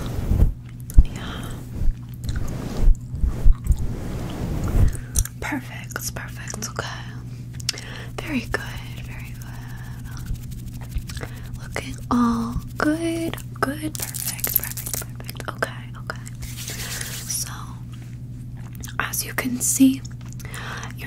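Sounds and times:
hands brushing microphone cover: 8.6 - 13.2, 16.4 - 17.4
chewing gum mouth sounds: 9.8 - 11.5, 18.5 - 19.0.

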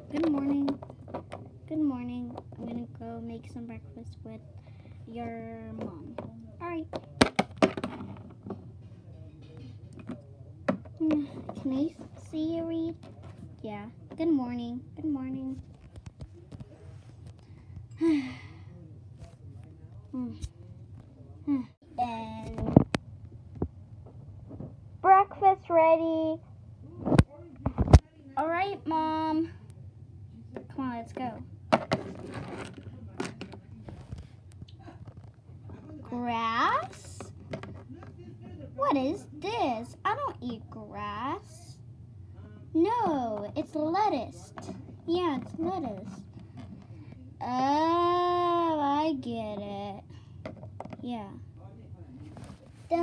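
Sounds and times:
plastic toys knocking on table: 6.9 - 8.6, 31.7 - 33.6, 37.4 - 37.9.

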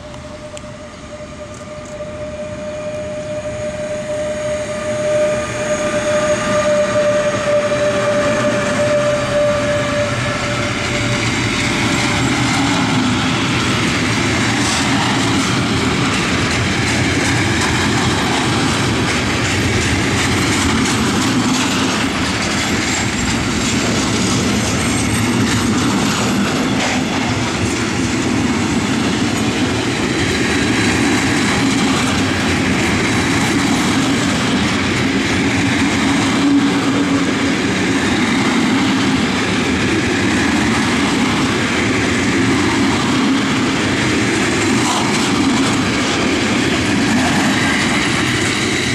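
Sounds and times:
train wheels on rails: 0.0 - 48.9.

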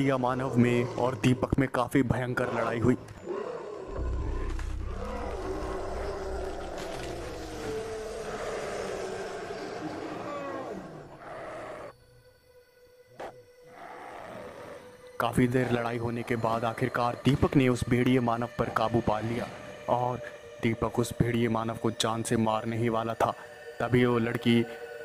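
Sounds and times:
beasts growling and roaring: 0.0 - 12.0, 13.2 - 17.8.

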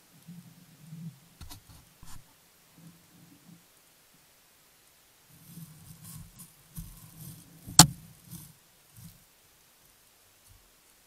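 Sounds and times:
bear rubbing against camera: 1.4 - 2.3.

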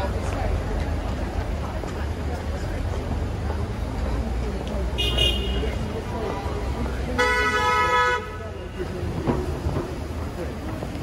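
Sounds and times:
street traffic rumble: 0.0 - 11.0
car horn blast: 5.0 - 5.7.

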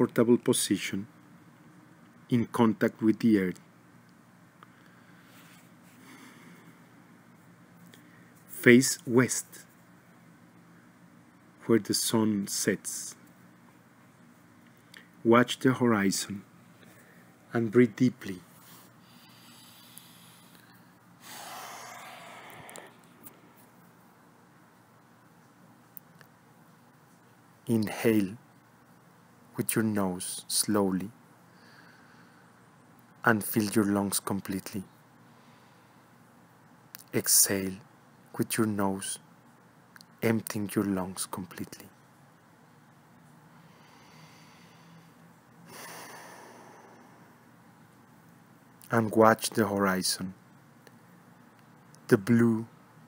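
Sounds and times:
faint hiss: 0.0 - 53.0
person taking deep breath: 19.0 - 23.6, 43.7 - 47.3.

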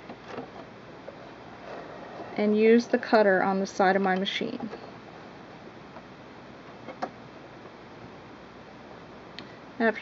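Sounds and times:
room hiss: 0.0 - 10.0.

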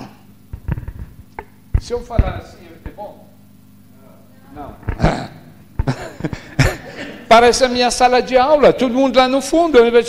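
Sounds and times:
microphone handling knocks: 0.5 - 3.0.

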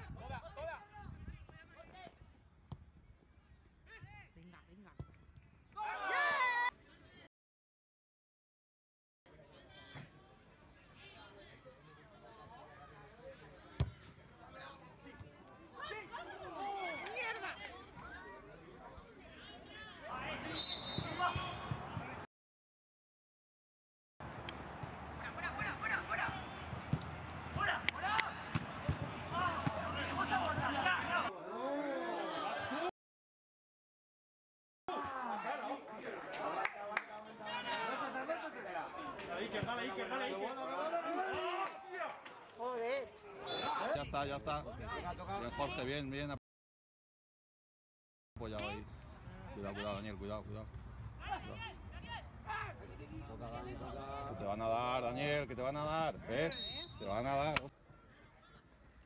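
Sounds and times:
players shouting: 5.7 - 6.7, 25.1 - 32.9, 37.4 - 42.3
football being kicked: 13.8 - 14.0, 26.2 - 29.9.

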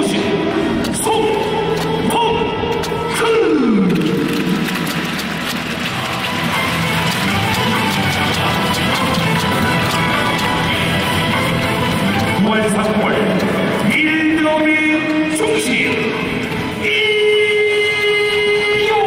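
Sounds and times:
music over stadium loudspeakers: 0.0 - 19.0.

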